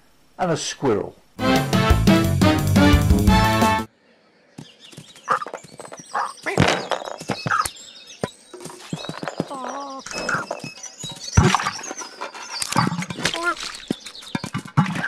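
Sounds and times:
squeaky warbling animal noises: 5.2 - 7.8, 8.8 - 15.0
cartoon scampering: 9.2 - 10.7, 12.7 - 13.8.

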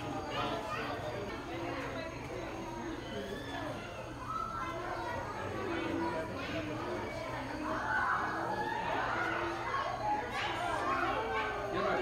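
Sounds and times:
children and visitors chattering: 0.0 - 12.0.

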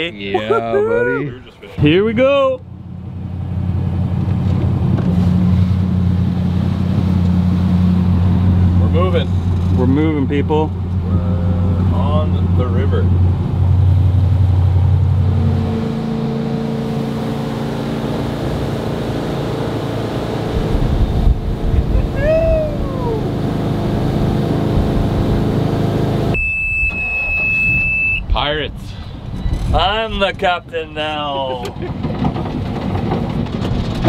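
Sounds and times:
boat engine droning: 0.0 - 28.2
high electronic beep: 26.4 - 28.3.

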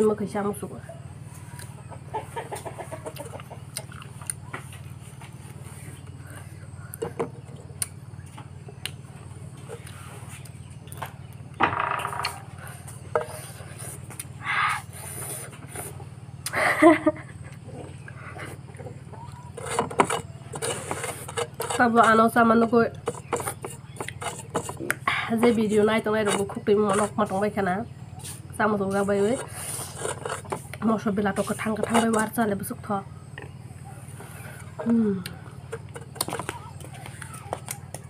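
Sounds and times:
steady low hum: 0.0 - 38.0
bird clucking: 1.4 - 3.7, 17.4 - 22.2
woman laughing: 16.5 - 17.8.

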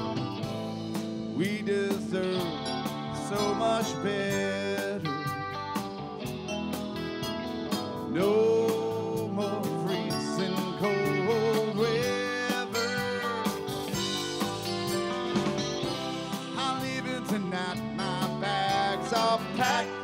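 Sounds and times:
rock band playing instrumental: 0.0 - 20.0.

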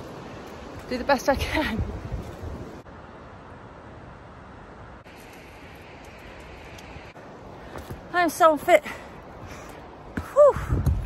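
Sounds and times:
wind buffeting microphone: 0.0 - 2.9, 9.2 - 11.0.

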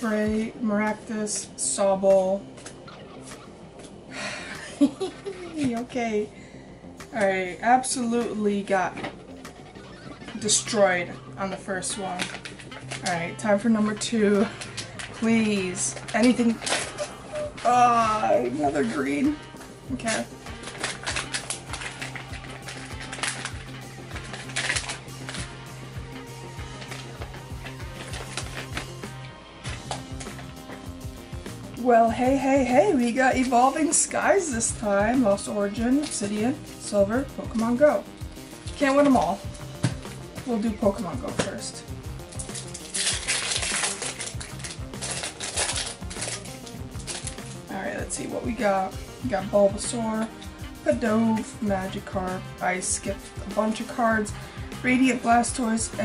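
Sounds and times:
soft background music: 0.0 - 56.0
foil wrappers crinkling: 11.8 - 30.8, 37.6 - 47.9.

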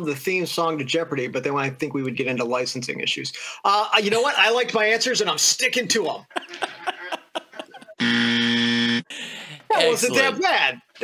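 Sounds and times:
low timer buzzer: 8.0 - 9.1.

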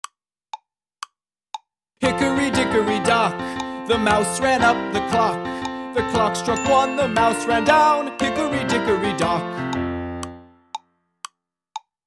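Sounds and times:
pendulum clock ticking: 6.5 - 11.9.

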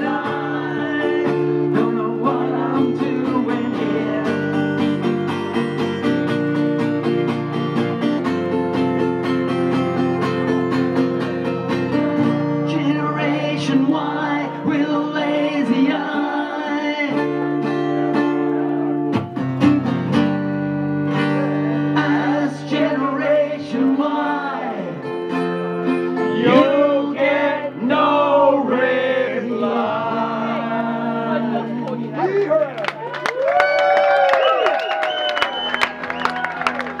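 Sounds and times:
acoustic guitar strummed: 0.0 - 32.7
audience cheering: 32.2 - 37.0
hand claps: 32.7 - 37.0.

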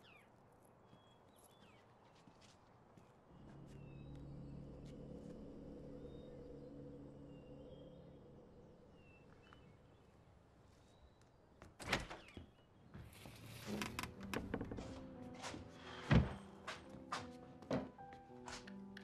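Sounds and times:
low steady drone: 3.3 - 10.4
faint bird chirps: 5.9 - 11.6.

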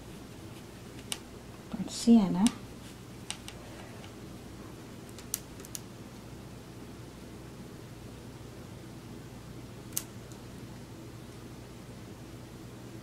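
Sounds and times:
low room hum: 0.0 - 13.0
small sharp clicks: 5.1 - 5.9, 9.9 - 10.4.

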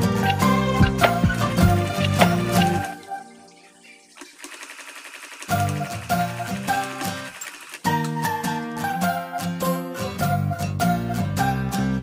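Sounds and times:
background music: 0.0 - 4.0, 5.4 - 12.0
sewing machine stitching: 4.2 - 8.1.

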